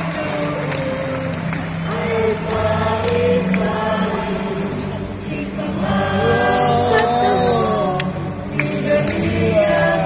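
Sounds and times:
large choir singing: 0.0 - 10.0.

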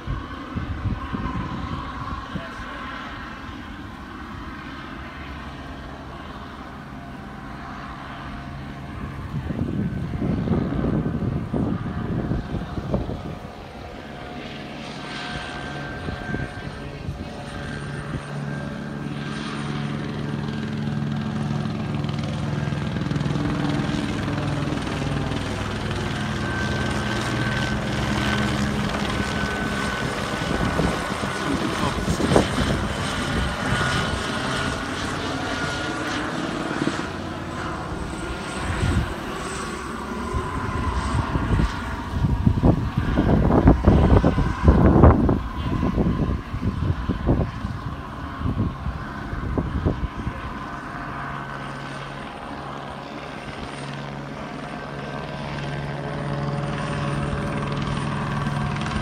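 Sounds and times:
helicopter rotor drone: 0.0 - 59.0.

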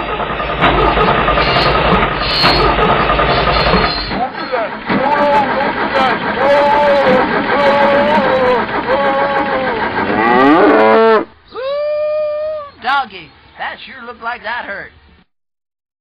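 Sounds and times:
pitched calls: 0.0 - 15.1
engine running: 0.0 - 15.3.

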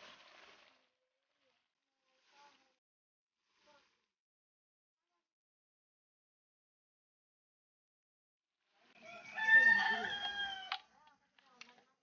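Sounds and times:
rooster crowing: 9.0 - 10.8.

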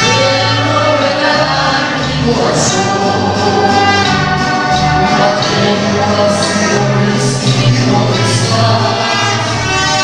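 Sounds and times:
low bass line: 0.0 - 10.0
mariachi band playing and singing: 0.0 - 10.0.

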